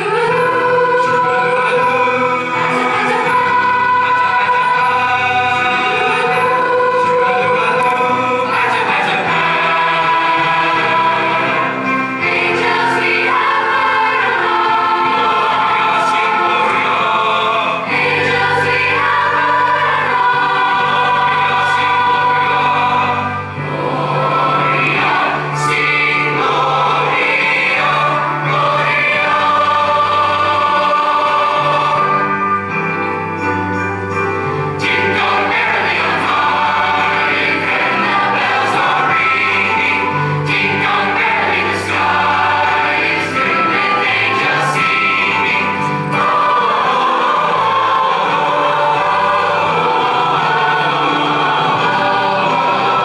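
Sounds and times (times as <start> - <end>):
mixed-voice choir singing: 0.0 - 53.0.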